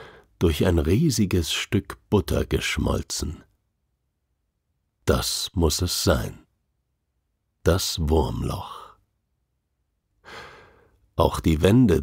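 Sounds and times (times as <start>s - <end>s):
person breathing: 0.0s - 0.4s, 10.2s - 11.0s.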